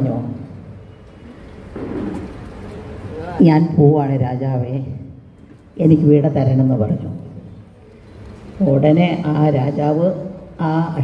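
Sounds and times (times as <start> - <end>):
hall background noise: 0.0 - 11.0.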